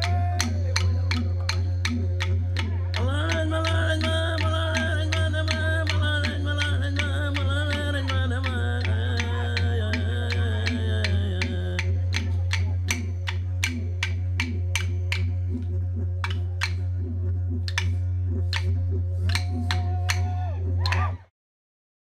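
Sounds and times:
wooden clapsticks beating: 0.0 - 21.2
didgeridoo drone: 0.0 - 21.3
man singing: 3.0 - 12.2.

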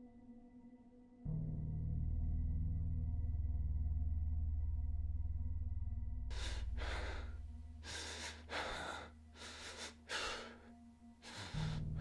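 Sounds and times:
low droning hum: 1.3 - 9.4
heavy human breathing: 6.3 - 12.0.

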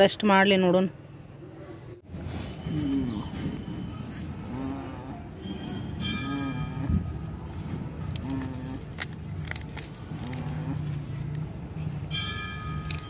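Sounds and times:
metal bell ringing: 5.6 - 6.9, 12.1 - 13.0.

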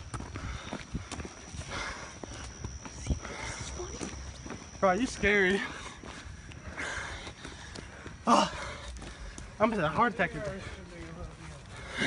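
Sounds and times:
footsteps on pavement: 0.0 - 12.0
young man's voice: 4.8 - 5.9, 9.6 - 11.8.

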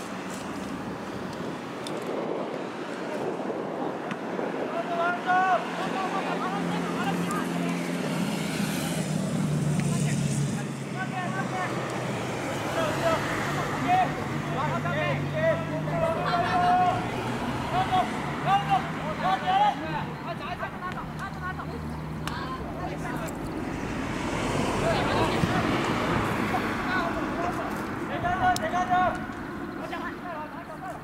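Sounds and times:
voices shouting calls: 3.9 - 31.0
vehicle engine drone: 5.8 - 30.6.

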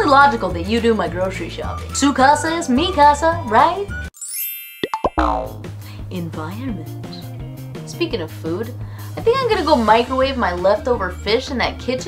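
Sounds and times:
background music with low beat: 5.2 - 11.1.

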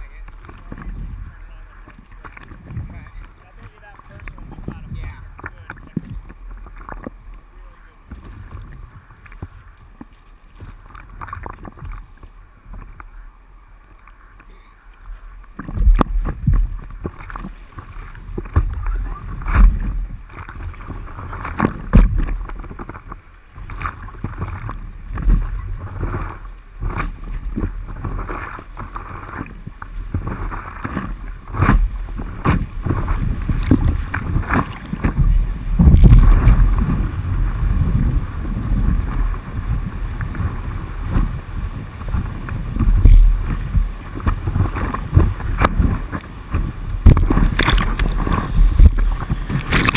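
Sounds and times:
paddle strokes in water: 0.0 - 49.9
water splashing against paddleboard: 0.0 - 49.9
low thumps: 15.6 - 17.2, 21.6 - 22.8, 31.5 - 41.4, 42.1 - 49.9.

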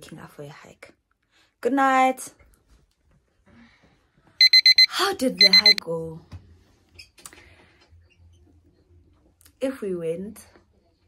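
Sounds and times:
alarm clock beeping: 4.4 - 5.8.

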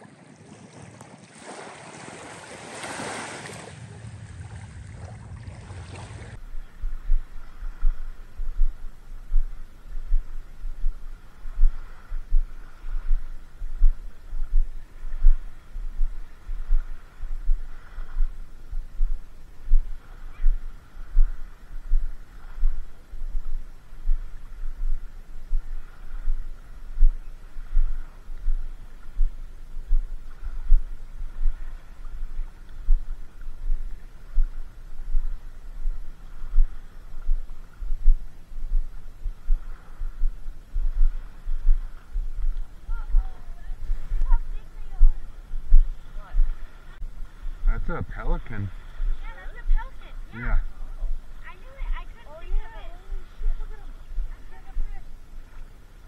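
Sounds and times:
faint steady hiss: 2.0 - 56.0
low thumps on microphone: 6.4 - 47.9.

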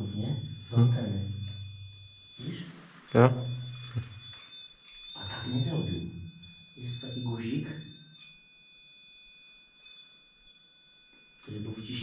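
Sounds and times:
man speaking: 0.0 - 1.4, 2.4 - 3.6, 5.2 - 6.1, 6.8 - 7.8, 11.5 - 12.0
high-pitched electronic tones: 0.0 - 7.8.

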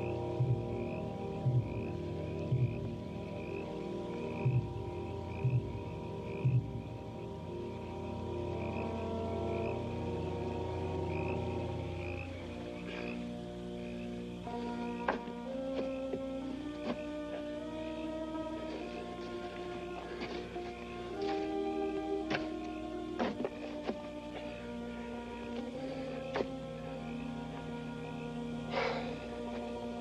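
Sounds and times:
deep beats: 0.0 - 13.1
chorus of frogs: 0.0 - 30.0
orchestral music with held chords: 0.0 - 30.0.

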